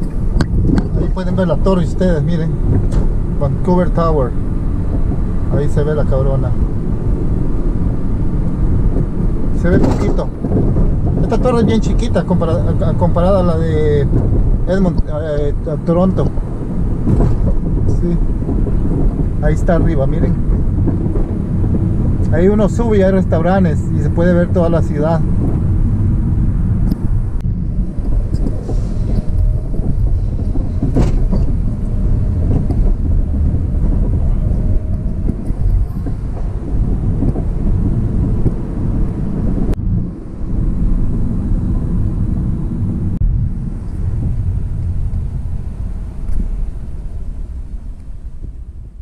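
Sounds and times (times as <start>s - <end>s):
car engine and road noise: 0.0s - 49.0s.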